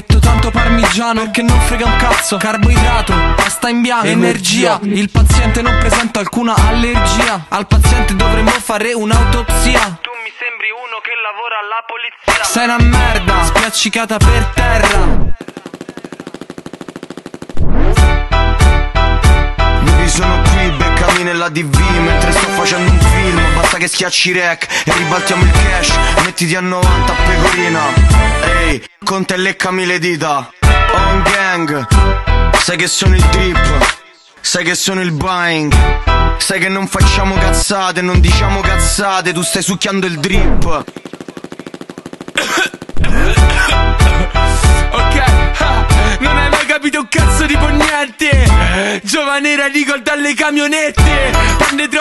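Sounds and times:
trap beat: 0:00.0 - 0:11.2, 0:12.2 - 0:15.4, 0:19.8 - 0:29.4, 0:30.6 - 0:35.8, 0:36.4 - 0:41.0, 0:43.0 - 0:52.0
machine-gun fire sound effect: 0:14.9 - 0:18.2, 0:40.7 - 0:44.2
rapid buzzing rattle: 0:40.8 - 0:43.0.

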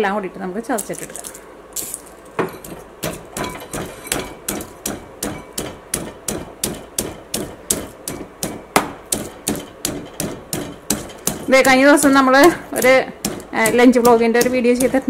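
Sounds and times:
stone pestle pounding in mortar: 0:02.4 - 0:15.0.

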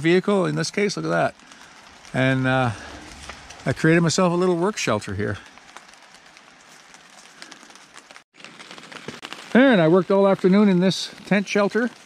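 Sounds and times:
rain pattering on plastic tarp: 0:00.0 - 0:12.0.

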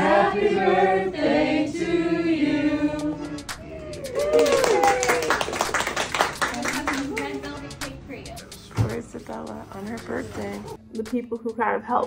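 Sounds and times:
people clapping: 0:03.5 - 0:07.9
voices cheering and calling out: 0:03.6 - 0:05.4.

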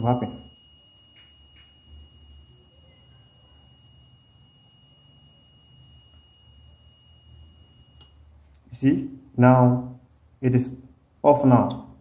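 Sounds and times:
high-pitched multimeter beep: 0:00.0 - 0:08.3.

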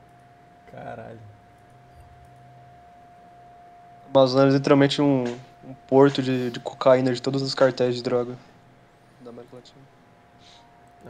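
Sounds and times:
faint steady electronic tone: 0:00.0 - 0:11.0
low steady hum: 0:00.0 - 0:11.0.

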